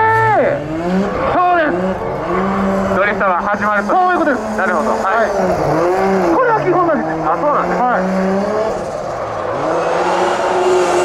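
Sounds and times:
car engine revving: 0.0s - 11.0s
tire squeal: 0.0s - 11.0s.

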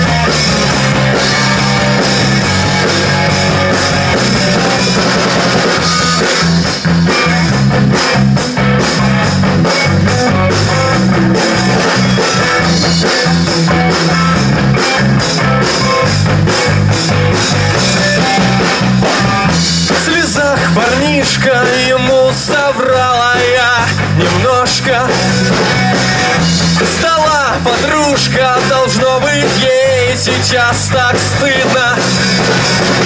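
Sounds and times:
drum kit: 0.0s - 33.0s
electric bass: 0.0s - 33.0s
electric guitar: 0.0s - 33.0s.

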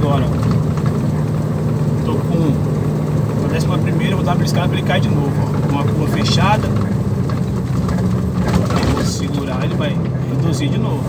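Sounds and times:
truck diesel engine droning: 0.0s - 11.0s.

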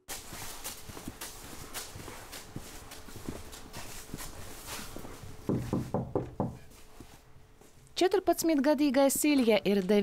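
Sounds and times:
footsteps on tiled floor: 0.1s - 8.0s.

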